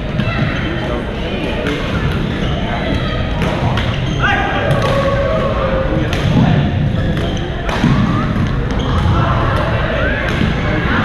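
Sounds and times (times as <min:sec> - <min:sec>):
babble of voices: 0:00.0 - 0:11.0.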